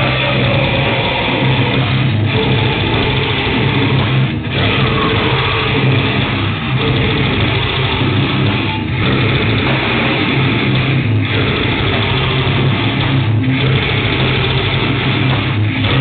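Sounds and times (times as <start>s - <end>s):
distorted electric guitars: 0.0s - 16.0s
fast pounding drums: 0.0s - 16.0s.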